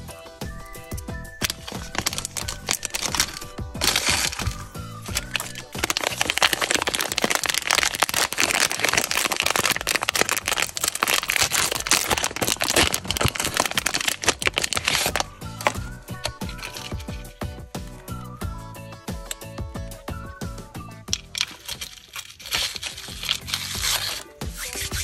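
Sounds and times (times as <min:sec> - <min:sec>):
background music: 0:00.0 - 0:25.0
plastic wrapper crinkling and tearing: 0:01.4 - 0:17.5, 0:21.1 - 0:25.0.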